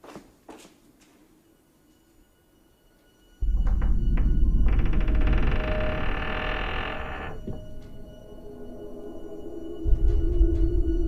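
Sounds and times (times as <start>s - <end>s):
deep rumbling hit: 3.4s - 8.2s.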